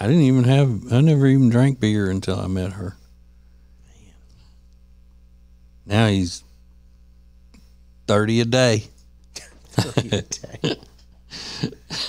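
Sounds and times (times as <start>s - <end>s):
electrical mains hum: 0.0s - 12.0s
faint breath: 11.3s - 11.8s.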